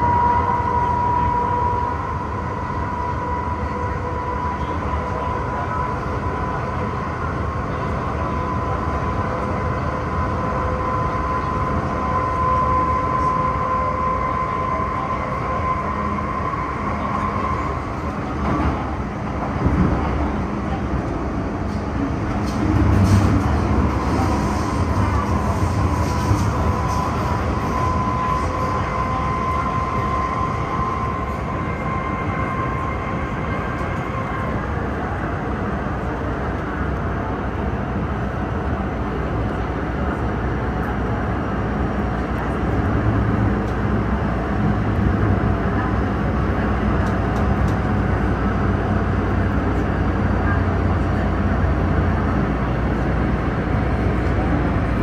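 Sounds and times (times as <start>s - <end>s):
high squeal: 0.0s - 7.0s, 7.9s - 18.2s, 22.9s - 34.7s
train wheels rumbling on rail: 0.0s - 55.0s.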